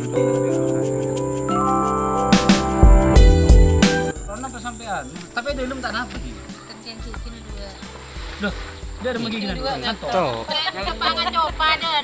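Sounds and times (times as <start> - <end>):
background music: 0.0 - 12.0
people talking: 4.1 - 12.0.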